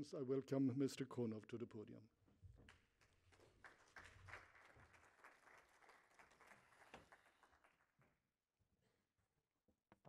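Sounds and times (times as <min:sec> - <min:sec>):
audience applause: 0:03.6 - 0:07.9.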